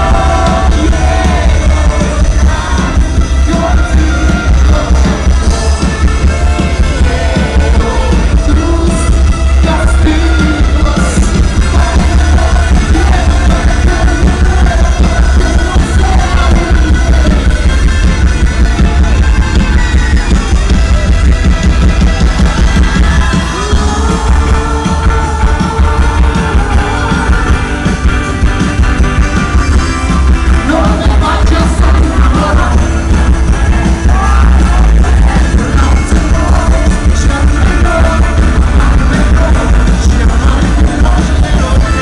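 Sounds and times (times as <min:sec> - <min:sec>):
man singing: 0:00.0 - 0:19.2, 0:22.4 - 0:28.1, 0:29.7 - 0:42.0
boomy bass: 0:00.0 - 0:42.0
live rock band playing: 0:00.0 - 0:42.0.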